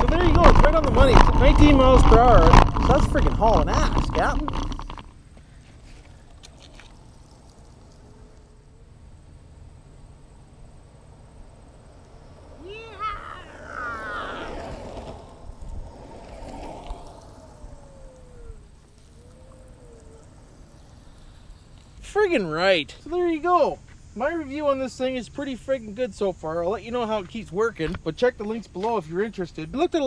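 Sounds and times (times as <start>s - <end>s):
low steady rumble: 0.0s - 23.2s
distant voice calling out: 12.5s - 15.4s.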